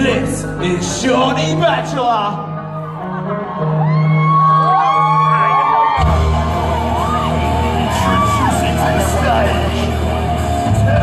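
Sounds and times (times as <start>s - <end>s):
loud live concert music: 0.0s - 11.0s
audience whooping and screaming: 2.5s - 11.0s
deep bass beat: 6.0s - 11.0s.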